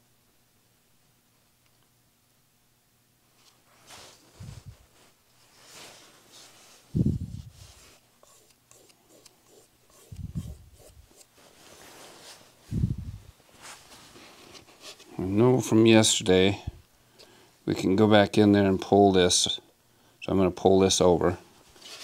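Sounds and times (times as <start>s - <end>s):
fingers rubbing film: 7.2s - 11.3s.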